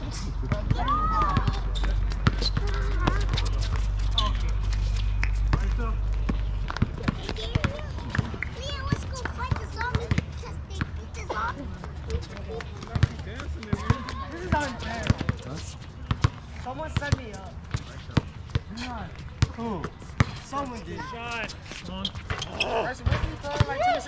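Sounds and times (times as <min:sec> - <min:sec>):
basketball bouncing on hard court: 0:00.5 - 0:04.4, 0:05.5 - 0:10.9, 0:12.4 - 0:17.4
players calling out: 0:20.9 - 0:24.0.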